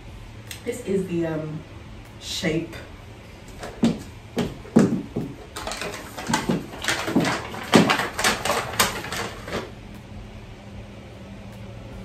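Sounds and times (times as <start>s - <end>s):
electric fan humming: 0.0s - 12.0s
rustles scrapes and knocks: 3.5s - 9.7s.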